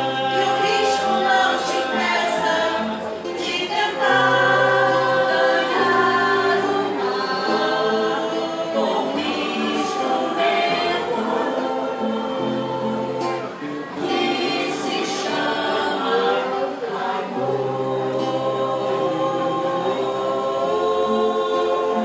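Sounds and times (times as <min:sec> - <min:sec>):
choir singing in harmony: 0:00.0 - 0:22.0.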